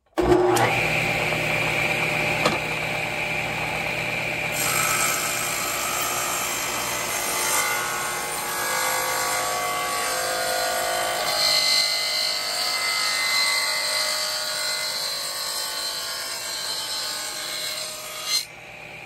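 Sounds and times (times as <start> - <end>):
table saw ripping wood: 0.1 - 3.8, 4.4 - 18.5
table saw whining: 0.1 - 19.0.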